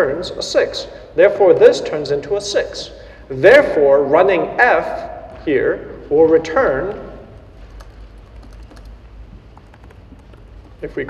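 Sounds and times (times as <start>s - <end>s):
computer keyboard keystrokes: 7.7s - 11.0s.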